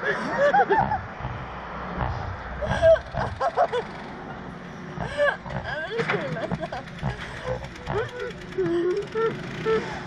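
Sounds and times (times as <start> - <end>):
low rumbling noise: 0.7 - 10.0
woman laughing: 2.6 - 3.9, 5.0 - 9.9.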